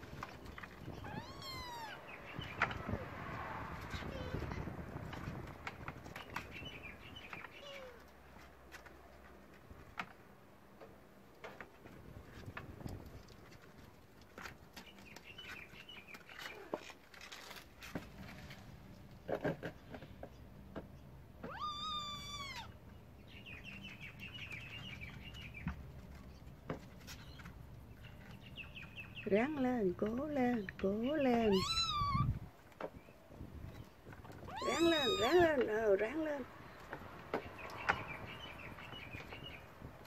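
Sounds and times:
kitten meowing: 1.0 - 2.1, 21.4 - 22.7, 31.5 - 32.3, 34.4 - 35.6
kittens scuffling in plastic crate: 12.0 - 19.2, 34.0 - 35.6.

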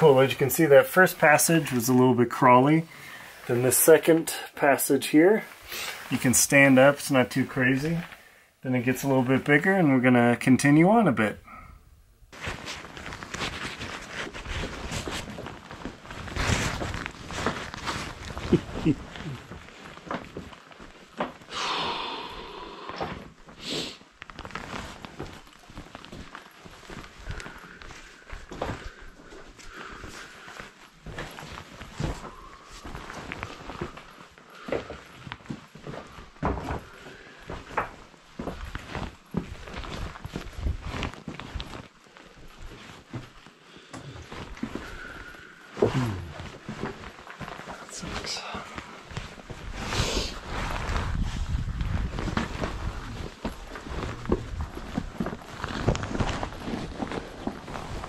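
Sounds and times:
clothing rustling and scraping: 0.0 - 10.0, 12.3 - 21.6, 22.2 - 58.0.

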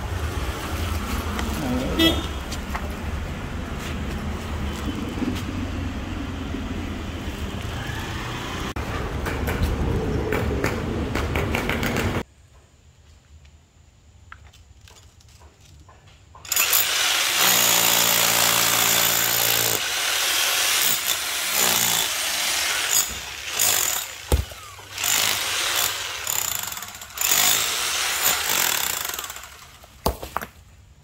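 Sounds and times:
rotary hammer chiselling ground: 14.3 - 30.6.

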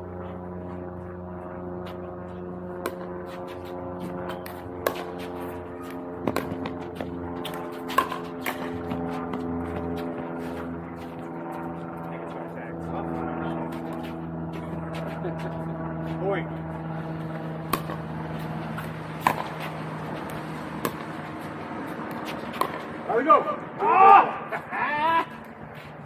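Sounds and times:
steady low hum: 0.0 - 26.0
paddles hitting plastic ball: 17.7 - 18.1, 18.8 - 21.2.

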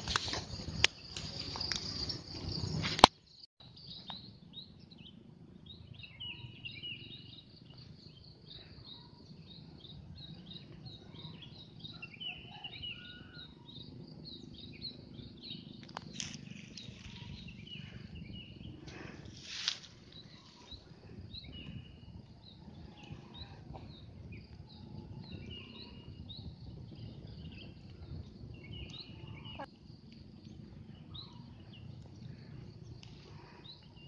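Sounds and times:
small birds chirping: 0.2 - 34.0
rustle: 19.3 - 20.6.

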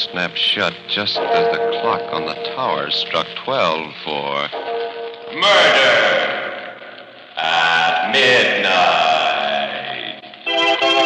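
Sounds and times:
man shouting with echo: 1.0 - 3.4, 5.4 - 6.6
loud music sting: 1.1 - 3.5.

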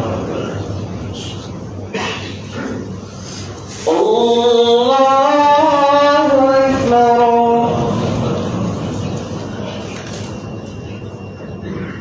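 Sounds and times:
person chanting: 3.8 - 8.3.

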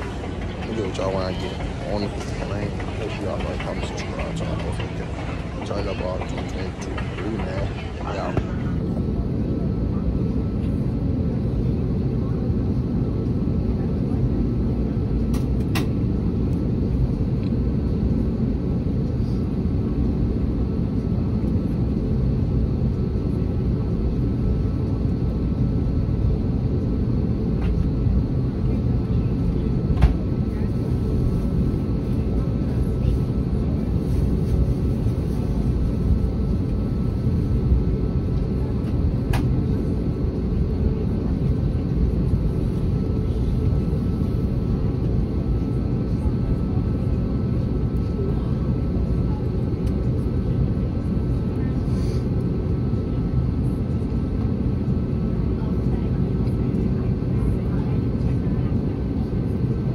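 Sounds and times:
jet engine rumble: 0.0 - 59.9.

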